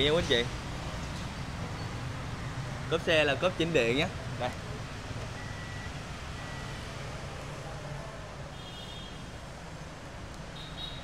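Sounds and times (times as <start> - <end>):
high warning beeps: 5.4 - 6.8.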